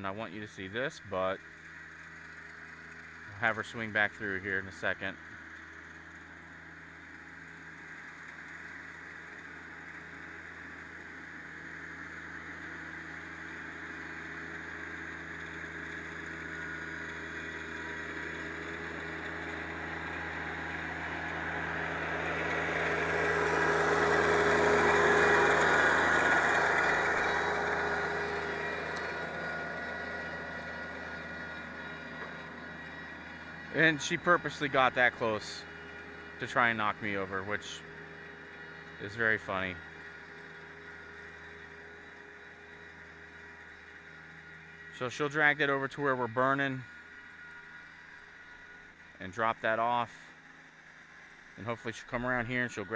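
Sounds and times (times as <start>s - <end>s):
tractor diesel engine running: 0.0s - 52.9s.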